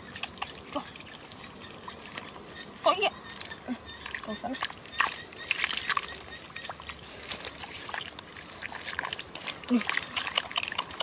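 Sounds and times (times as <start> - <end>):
muddy water sloshing and splashing: 0.0 - 11.0
wet clicks and squelches: 3.2 - 11.0.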